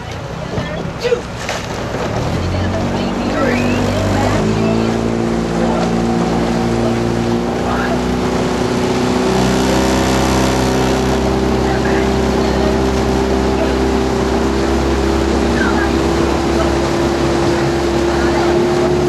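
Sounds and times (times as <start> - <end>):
motorboat engine speeding up: 0.0 - 19.0.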